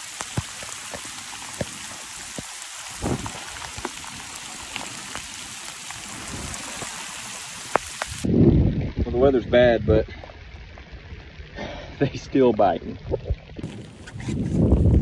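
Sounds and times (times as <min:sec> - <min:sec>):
sharp taps of raindrops: 0:00.0 - 0:08.3
heavy rain on lake surface: 0:00.0 - 0:09.0, 0:10.2 - 0:13.8.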